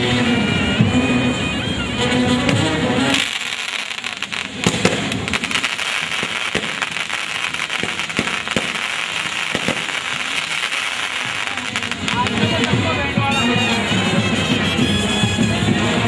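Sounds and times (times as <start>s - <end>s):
firecrackers crackling and popping: 0.0s - 16.0s.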